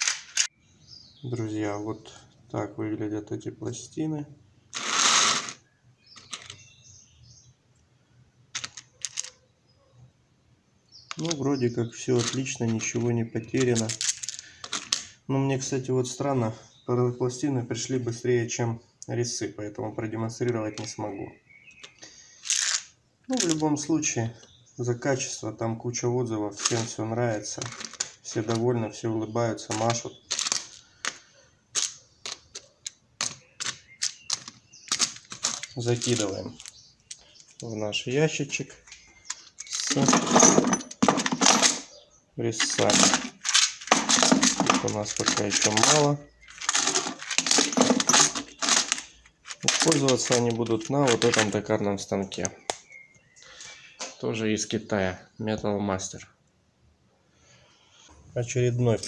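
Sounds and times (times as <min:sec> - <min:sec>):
plastic case scraping on rough surface: 0:04.7 - 0:05.6, 0:39.3 - 0:41.8, 0:42.6 - 0:51.6
plastic cases clicking together: 0:06.2 - 0:06.6, 0:08.5 - 0:09.4, 0:11.1 - 0:11.4, 0:12.2 - 0:15.1, 0:21.7 - 0:23.7, 0:26.6 - 0:28.7, 0:29.6 - 0:37.7, 0:38.9 - 0:41.9, 0:42.6 - 0:51.6.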